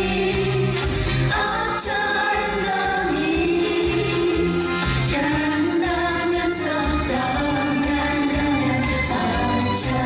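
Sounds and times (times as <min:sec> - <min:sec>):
live band playing pop song: 0:00.0 - 0:10.0
sung vocal harmonies: 0:00.0 - 0:10.0.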